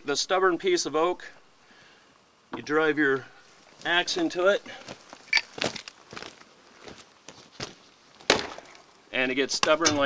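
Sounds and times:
axe striking log: 8.3s - 8.7s.

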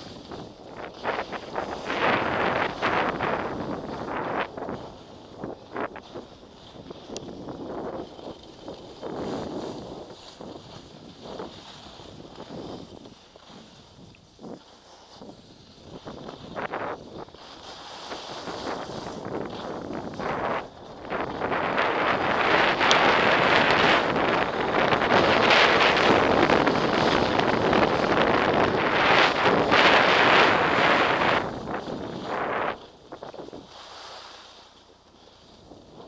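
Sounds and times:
wind buffeting microphone: 0.0s - 14.6s, 18.2s - 33.7s
skis scraping over snow: 0.0s - 36.0s.

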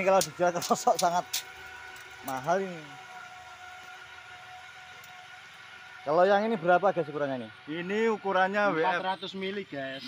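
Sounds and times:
background hum and hiss: 0.0s - 10.0s
thin steady whine: 0.0s - 10.0s.

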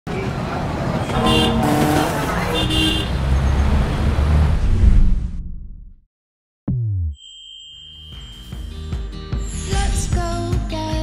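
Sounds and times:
traffic rumble: 0.1s - 5.4s
car horn: 1.0s - 3.4s.

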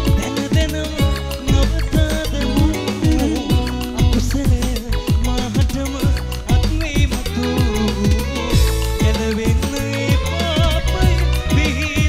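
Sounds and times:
drum hits: 0.0s - 12.0s
live band playing pop: 0.0s - 12.0s.

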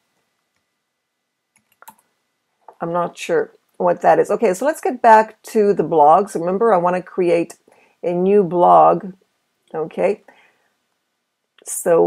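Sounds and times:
computer keyboard typing: 1.5s - 2.0s.

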